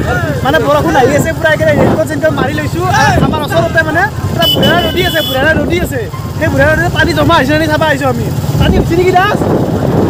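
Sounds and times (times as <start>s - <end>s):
voices talking: 0.0s - 9.5s
motorcycle engine running: 0.0s - 10.0s.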